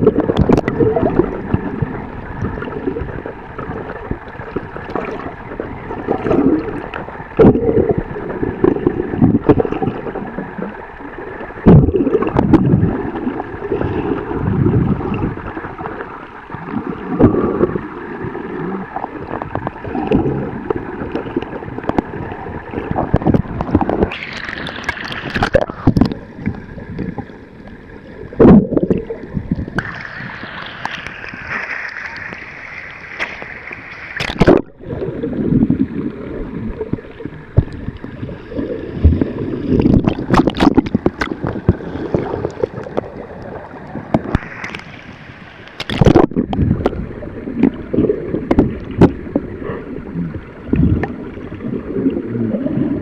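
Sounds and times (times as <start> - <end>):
gurgling bubbles: 0.0 - 53.0
muffled underwater noise: 0.0 - 53.0
water lapping and splashing: 0.0 - 53.0.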